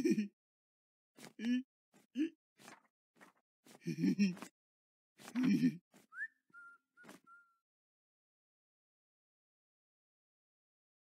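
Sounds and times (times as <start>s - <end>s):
person whistling: 6.1s - 7.6s.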